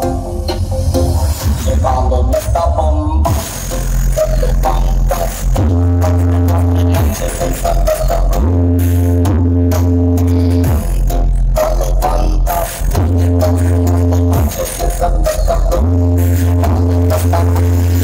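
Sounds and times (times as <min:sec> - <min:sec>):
loud music with deep sliding bass: 0:00.0 - 0:18.0.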